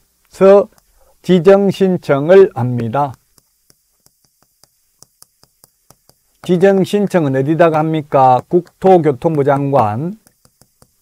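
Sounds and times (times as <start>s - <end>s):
chalk clicking on chalkboard: 0.4s - 11.0s.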